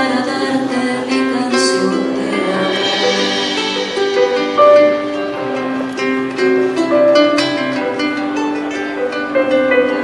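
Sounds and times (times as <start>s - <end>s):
drums: 0.0s - 10.0s
melodic line: 1.6s - 8.1s
sharp cymbal hits: 1.7s - 7.3s.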